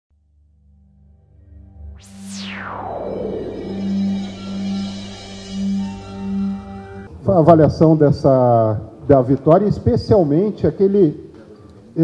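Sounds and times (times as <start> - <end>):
low synthesizer tone: 0.2 - 7.3
whoosh sweeping down in pitch: 1.6 - 7.1.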